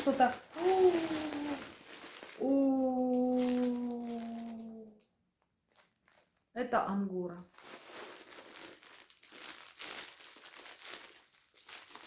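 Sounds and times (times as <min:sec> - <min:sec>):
woman exclaiming ooh: 0:00.6 - 0:01.7, 0:02.4 - 0:05.0.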